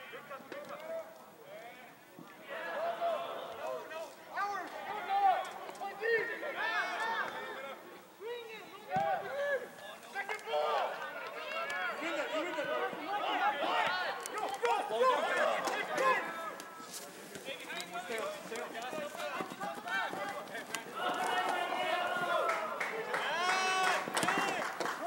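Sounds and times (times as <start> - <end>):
voices shouting and calling out: 0.0 - 25.0.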